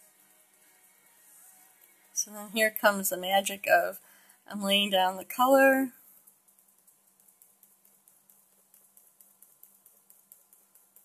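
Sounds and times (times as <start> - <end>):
faint ticks: 5.9 - 11.0.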